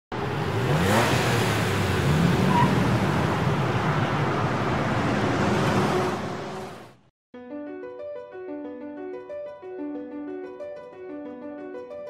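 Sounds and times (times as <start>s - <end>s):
car engine accelerating: 0.1s - 7.0s
road noise: 0.1s - 7.1s.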